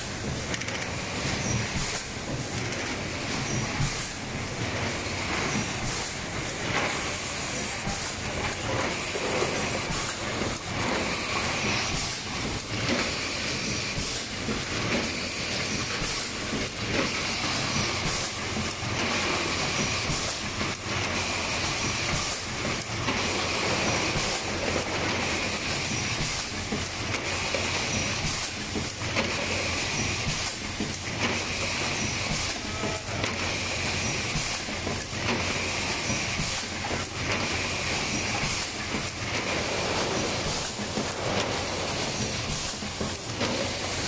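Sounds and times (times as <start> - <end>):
machine mechanical noise: 0.0 - 44.0.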